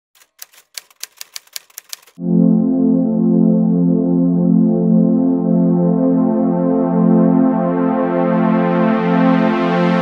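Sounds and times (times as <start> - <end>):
typewriter key strikes: 0.2 - 2.2.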